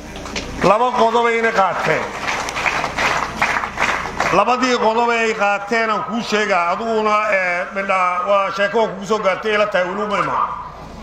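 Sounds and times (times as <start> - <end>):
crowd applause: 0.0 - 6.9.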